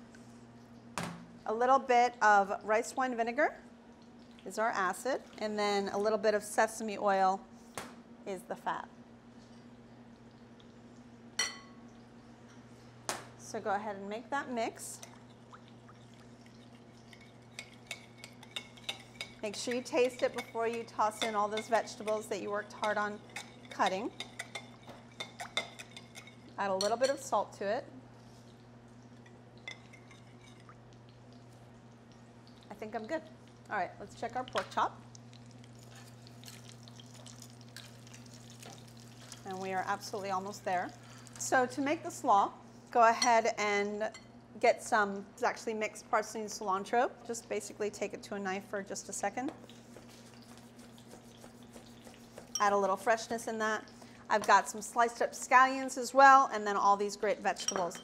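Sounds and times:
faint steady hum: 0.0 - 58.0
glass clinking against glass bowl: 11.4 - 11.8, 57.6 - 58.0
pork chops frying in oil: 34.2 - 41.7.

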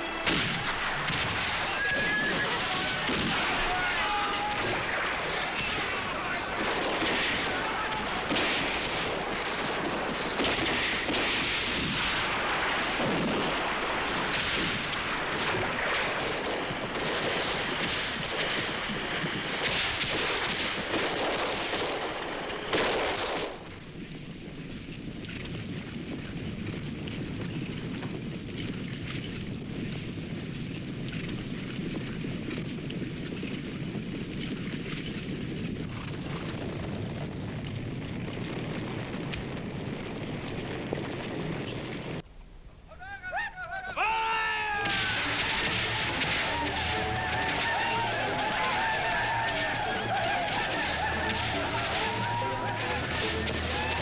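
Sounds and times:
battle noise: 0.0 - 23.4, 42.9 - 54.0
steady low rumble: 0.0 - 42.9
dense rifle gunfire: 0.1 - 23.8, 44.8 - 53.8.

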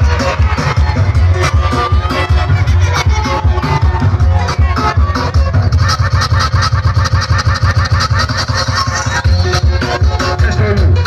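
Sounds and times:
music with deep pulsing beat: 0.0 - 11.0.

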